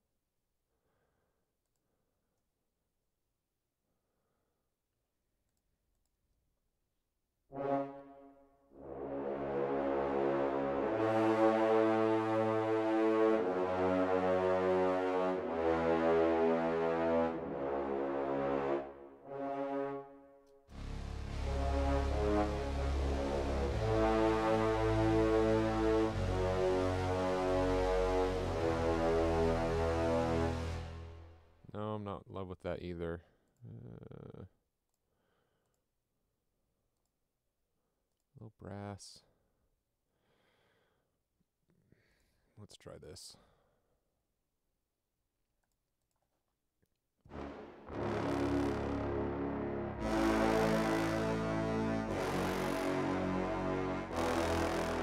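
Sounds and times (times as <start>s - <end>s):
orchestral brass chords: 7.5s - 31.6s, 47.3s - 55.0s
low bass: 20.7s - 31.5s, 47.3s - 55.0s.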